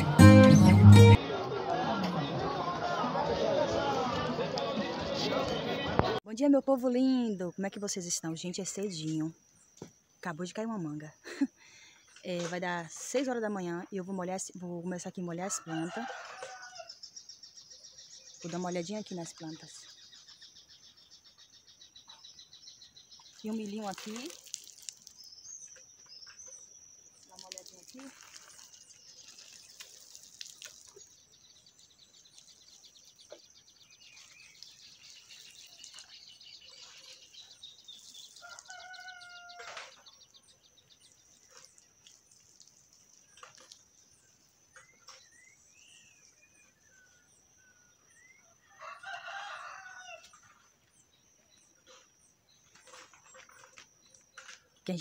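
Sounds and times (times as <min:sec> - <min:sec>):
faint rooster crowing: 0:15.4 - 0:17.0, 0:38.3 - 0:40.4, 0:48.4 - 0:50.6.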